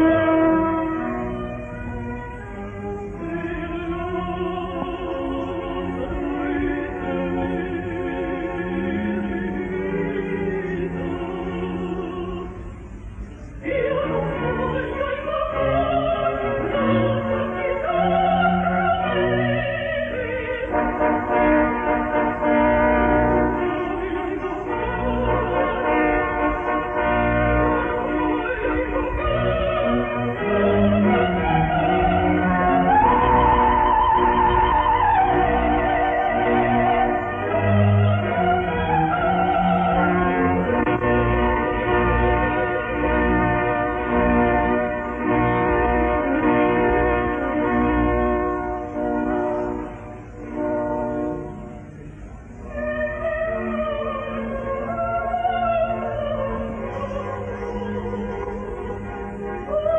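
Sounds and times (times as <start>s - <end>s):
orchestra playing held chords: 0.0s - 59.9s.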